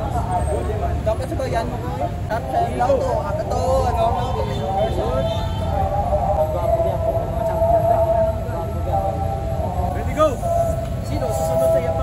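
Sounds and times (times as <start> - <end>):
voices of small group: 0.0 - 12.0.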